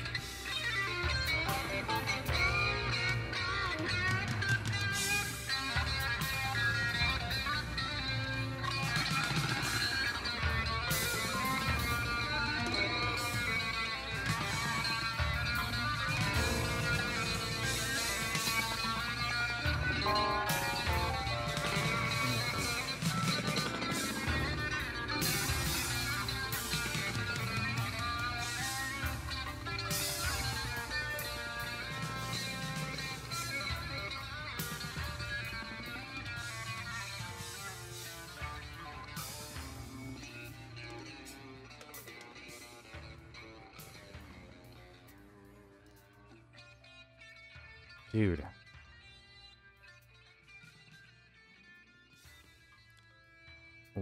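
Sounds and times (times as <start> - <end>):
instrumental rock guitar music: 0.0 - 54.0.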